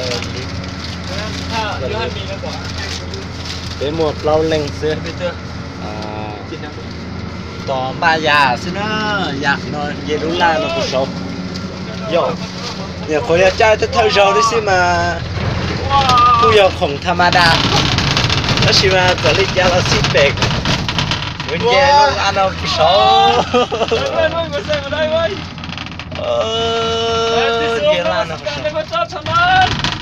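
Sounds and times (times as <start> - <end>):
voices: 0.0 - 20.6, 21.4 - 29.8
cable car mechanical hum: 0.0 - 30.0.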